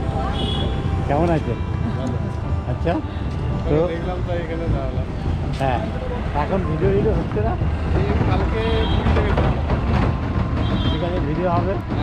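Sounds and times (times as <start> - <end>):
low traffic rumble: 0.0 - 12.0
people talking: 3.7 - 9.7.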